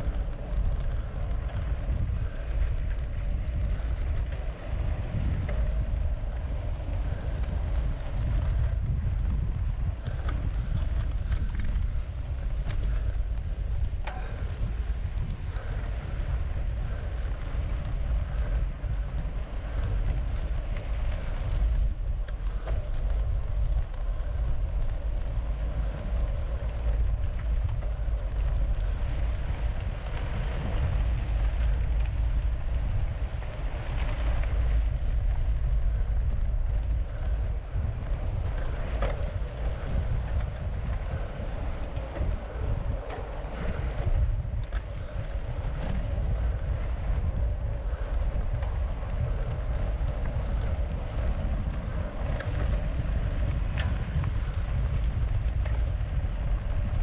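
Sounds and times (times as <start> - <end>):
tyres rolling on dirt road: 0.0 - 57.0
wind buffeting microphone: 0.0 - 57.0.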